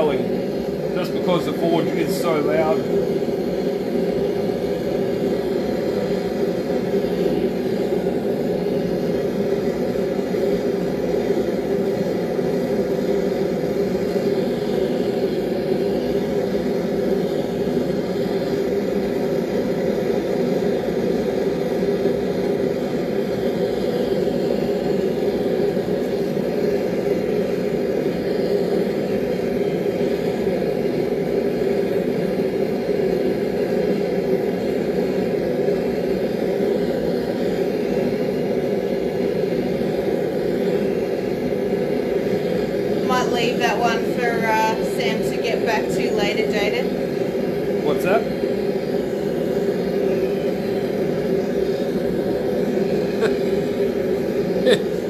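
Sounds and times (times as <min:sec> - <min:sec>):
forge roaring: 0:00.0 - 0:55.0.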